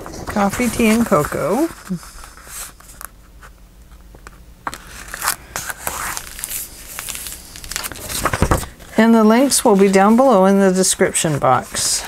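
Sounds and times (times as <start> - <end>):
paper sheets rustling and sliding: 0.0 - 3.1, 4.7 - 12.0.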